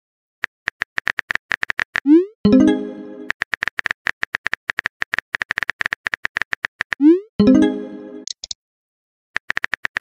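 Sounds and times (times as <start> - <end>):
phone keyboard typing clicks: 8.2 - 8.6.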